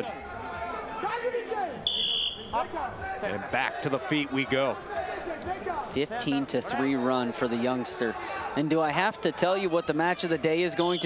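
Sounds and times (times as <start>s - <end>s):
crowd shouting: 0.0s - 11.0s
referee whistle blast: 1.8s - 2.6s, 10.8s - 11.0s.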